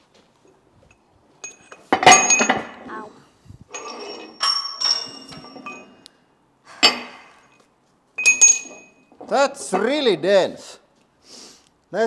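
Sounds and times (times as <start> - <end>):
metal clank with ring: 1.4 - 2.8, 3.7 - 6.0, 8.2 - 9.1
metal cylinders scraping and clinking: 1.4 - 2.9, 3.7 - 6.1, 8.2 - 10.1.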